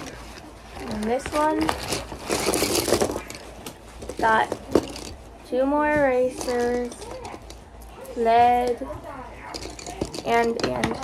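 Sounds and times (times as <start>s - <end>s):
plastic package and pencils rustling: 0.0s - 11.0s.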